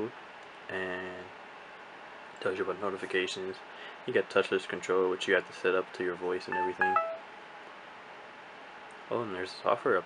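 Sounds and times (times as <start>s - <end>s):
short tone: 6.5s - 7.2s
microphone hiss: 6.5s - 7.4s.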